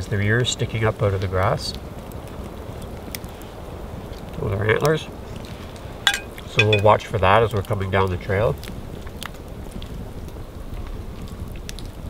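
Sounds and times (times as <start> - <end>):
campfire hiss: 0.2 - 6.0.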